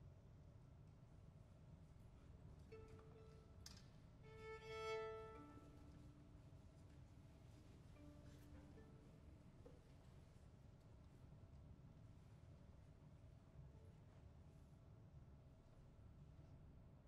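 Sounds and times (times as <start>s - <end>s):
soft bowed string notes: 2.6s - 10.4s.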